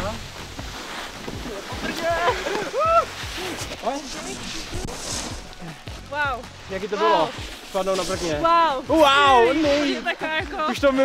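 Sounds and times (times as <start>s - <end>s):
snowboards scraping over snow: 0.0s - 11.0s.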